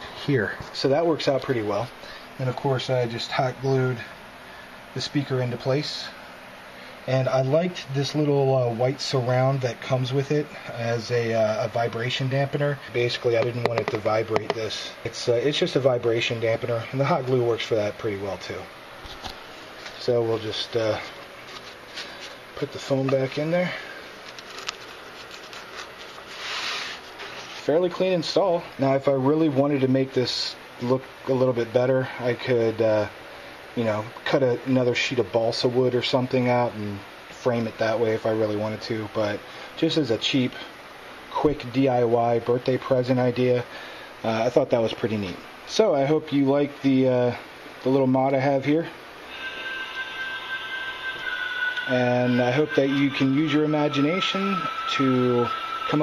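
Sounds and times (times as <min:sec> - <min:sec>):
foam rustling: 0:24.2 - 0:27.8.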